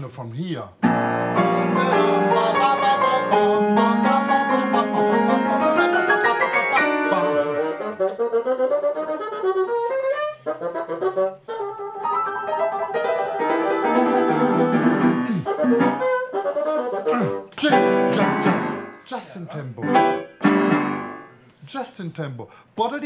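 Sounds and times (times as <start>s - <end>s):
piano accompaniment: 0.8s - 9.7s, 10.5s - 19.1s, 19.8s - 21.4s
bassoon playing: 0.8s - 19.0s.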